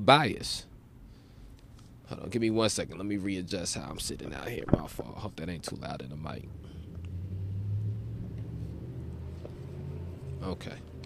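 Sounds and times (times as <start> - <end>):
vehicle engine rumble: 3.8 - 11.0.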